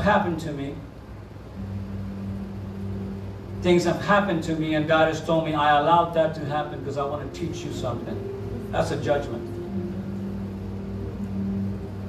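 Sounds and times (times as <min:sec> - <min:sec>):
deeper hum: 0:00.0 - 0:12.0
low held tone: 0:00.0 - 0:12.0.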